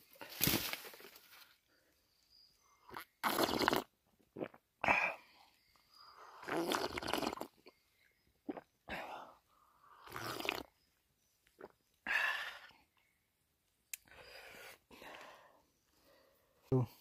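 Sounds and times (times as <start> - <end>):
man slurping water: 2.9 - 5.2, 6.4 - 7.7, 10.0 - 10.7.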